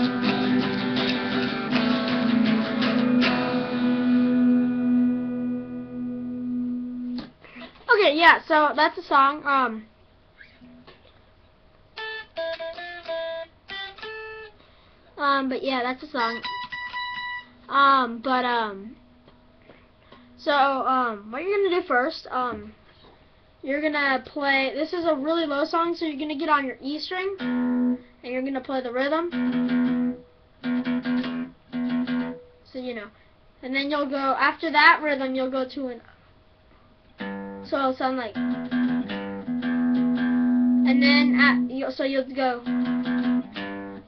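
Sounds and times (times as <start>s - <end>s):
electric guitar single notes: 0.0s - 7.3s, 12.0s - 14.5s, 16.2s - 17.7s, 27.4s - 28.1s, 29.3s - 32.5s, 37.2s - 41.9s, 42.6s - 44.0s.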